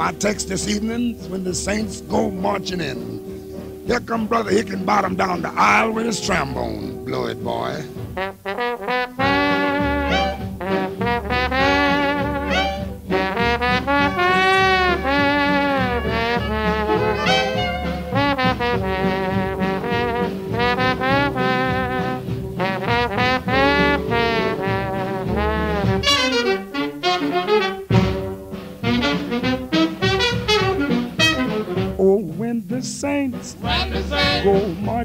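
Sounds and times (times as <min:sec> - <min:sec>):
trombone solo: 0:00.0 - 0:32.0, 0:33.6 - 0:34.7
swing band playing: 0:00.0 - 0:35.0.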